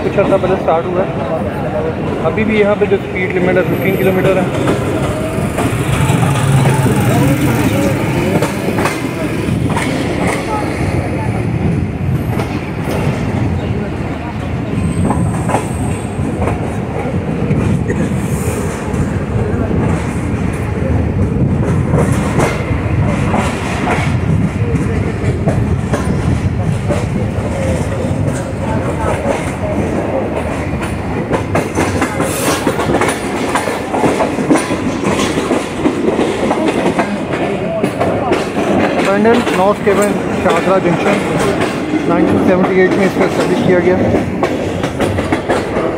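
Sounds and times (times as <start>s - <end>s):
train rumble: 0.0s - 45.9s
wheels clacking over rail joints: 3.0s - 45.9s.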